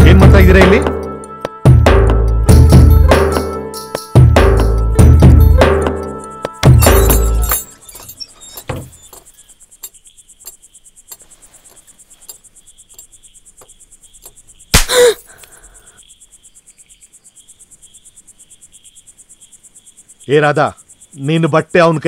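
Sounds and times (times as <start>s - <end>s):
crickets chirping: 0.0s - 22.0s
low insect trill: 0.2s - 22.0s
sharp loud smack: 14.7s - 15.0s.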